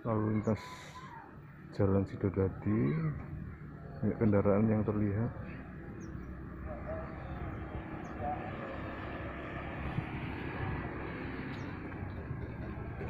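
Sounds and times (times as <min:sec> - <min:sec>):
road traffic drone: 0:00.0 - 0:13.0.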